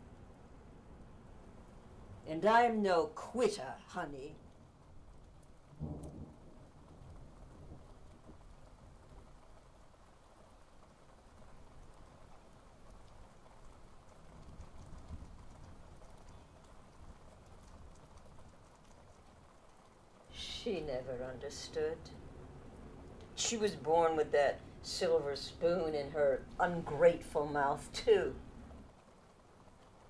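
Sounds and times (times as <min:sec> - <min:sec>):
faint background hiss: 0:00.0 - 0:30.0.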